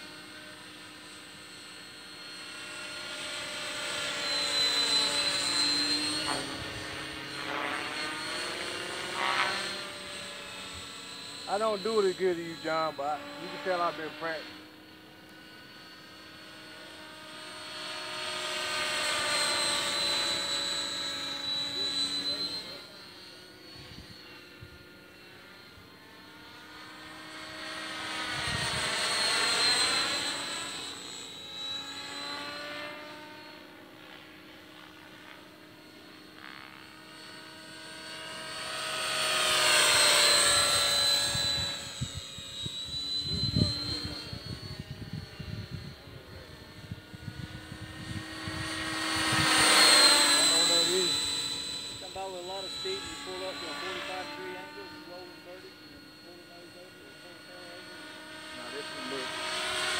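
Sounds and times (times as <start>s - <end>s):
rc helicopter rotor whine: 0.0s - 59.9s.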